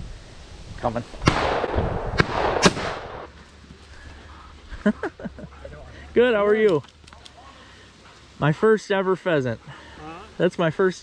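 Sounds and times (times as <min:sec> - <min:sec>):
shotgun shots with echo: 0:01.2 - 0:03.3.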